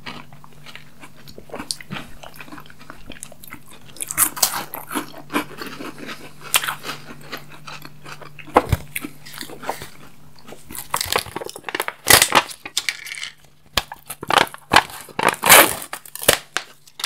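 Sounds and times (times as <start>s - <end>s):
chewing and crunching sweets: 0.0s - 17.0s.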